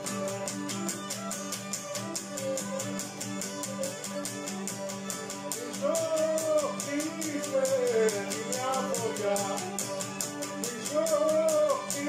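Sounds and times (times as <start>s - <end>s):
bowed lyra melody: 0.0s - 12.0s
lute strumming rhythm: 0.0s - 12.0s
man singing: 5.6s - 10.0s, 10.6s - 12.0s.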